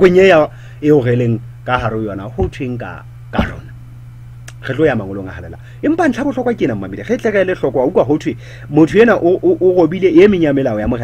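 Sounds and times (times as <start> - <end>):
man speaking: 0.0 - 3.8, 4.5 - 11.0
low electrical hum: 0.0 - 11.0
man clearing throat: 3.4 - 3.8.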